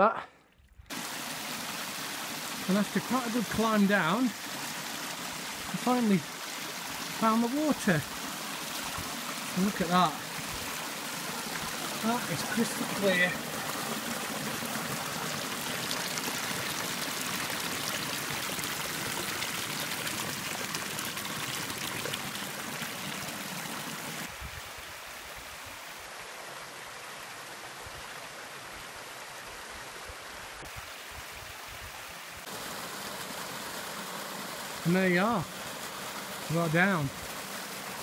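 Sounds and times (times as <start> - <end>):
stream splashing over rocks: 0.9 - 38.0.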